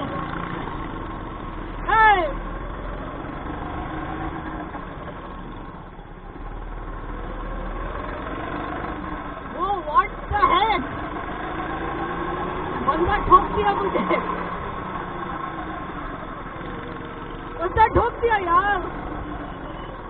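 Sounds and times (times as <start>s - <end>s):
go-kart engine running: 0.0s - 20.0s.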